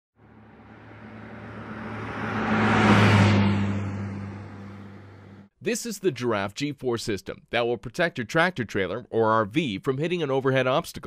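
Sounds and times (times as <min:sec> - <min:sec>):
vehicle passing by: 0:00.2 - 0:05.5.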